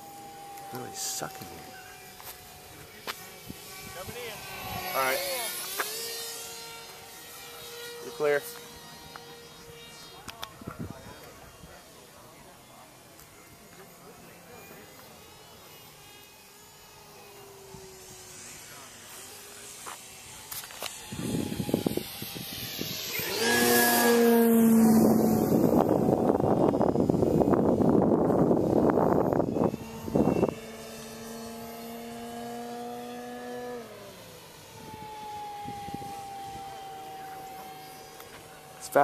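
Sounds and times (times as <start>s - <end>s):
model airplane engine whine: 0.0s - 39.0s
wind buffeting microphone: 21.0s - 31.0s.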